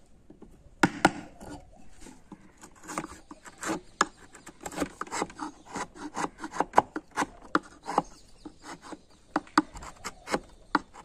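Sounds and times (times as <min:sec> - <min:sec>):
knife scraping wood: 0:01.1 - 0:11.0.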